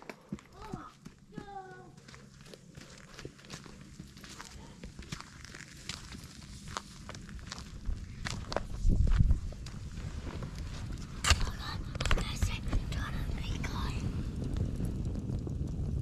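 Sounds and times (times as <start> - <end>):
low rumble: 1.9 - 16.0
footsteps crunching on dry leaves: 2.0 - 10.9.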